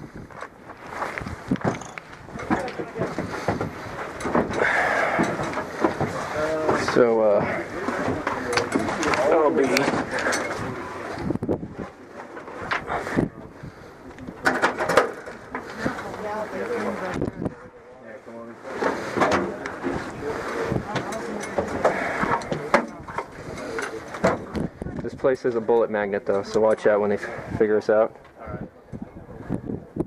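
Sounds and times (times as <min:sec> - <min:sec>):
indistinct voices talking: 0:02.3 - 0:30.0.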